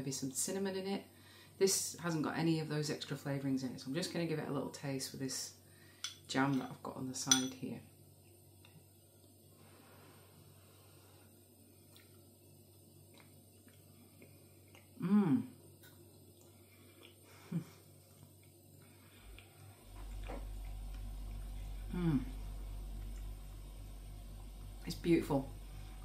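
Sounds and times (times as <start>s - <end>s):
low steady hum: 0.0s - 26.0s
woman humming mmm: 14.9s - 15.6s, 21.4s - 22.8s.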